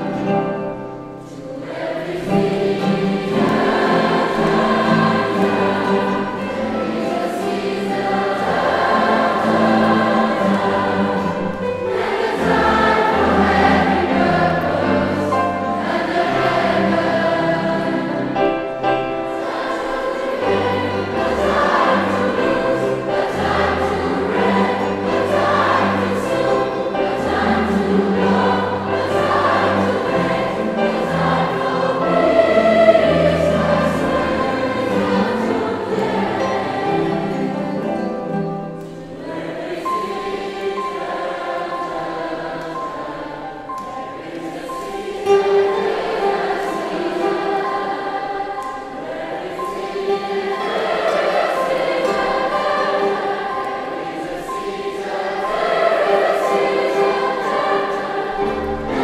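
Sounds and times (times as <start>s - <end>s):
instrumental accompaniment: 0.0s - 59.0s
youth choir singing: 0.0s - 59.0s.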